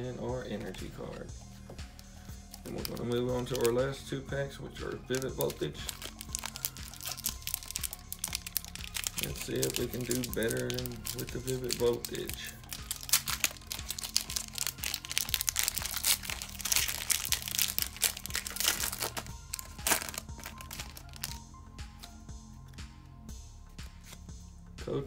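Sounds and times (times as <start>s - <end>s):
soft background music: 0.0s - 25.0s
cards rustling and clicking: 1.6s - 3.8s, 5.1s - 23.0s
foil wrapper crinkling: 5.1s - 21.4s.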